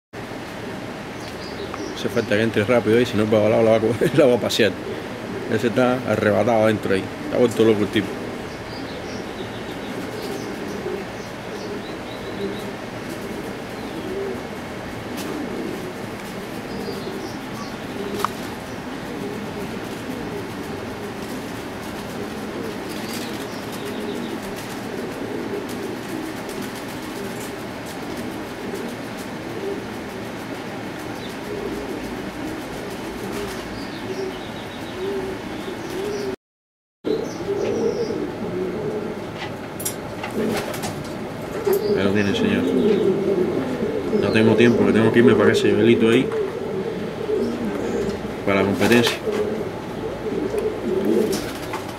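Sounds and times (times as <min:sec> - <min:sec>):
pigeons cooing: 0:00.2 - 0:36.4, 0:37.1 - 0:51.9.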